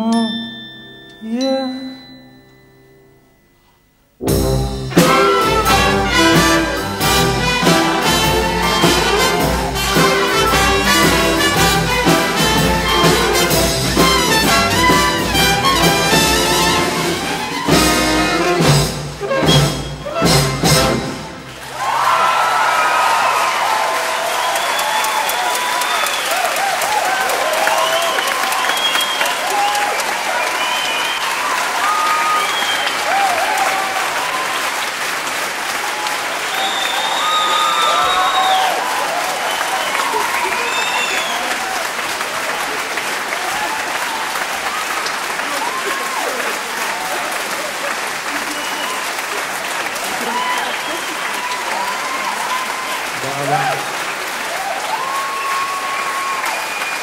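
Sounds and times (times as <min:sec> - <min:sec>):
crowd cheering: 0:04.4 - 0:57.0
audience clapping: 0:04.9 - 0:57.0.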